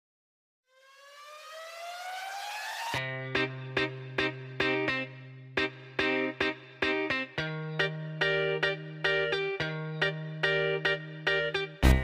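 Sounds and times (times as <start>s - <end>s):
tone gliding upward in pitch: 0.7s - 3.0s.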